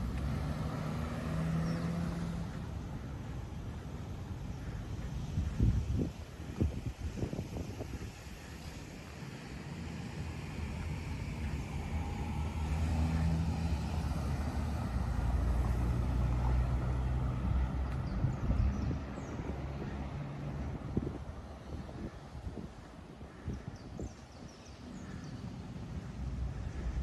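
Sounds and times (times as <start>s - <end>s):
car driving past: 0.0s - 3.1s, 9.9s - 18.4s.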